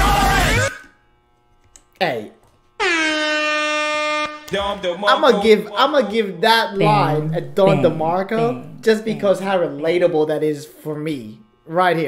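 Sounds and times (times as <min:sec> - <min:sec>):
rapping over a beat: 0:04.6 - 0:06.2, 0:06.8 - 0:09.3
falling vocal sound: 0:06.8 - 0:09.2.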